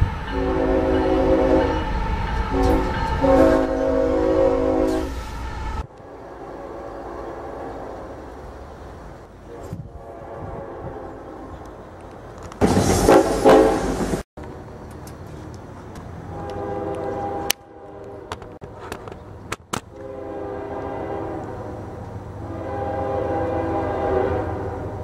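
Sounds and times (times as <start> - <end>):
locomotive air horn blasts: 0.0 - 5.3, 5.9 - 8.3, 9.4 - 11.6, 13.0 - 14.1, 16.3 - 18.6, 19.9 - 25.0
rumble of passing freight train: 0.0 - 25.0.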